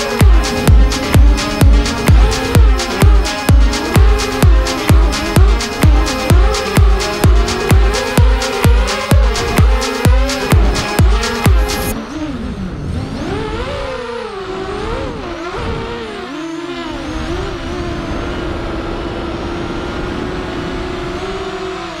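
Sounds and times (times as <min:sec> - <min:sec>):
quadcopter motors whining: 0:00.0 - 0:22.0.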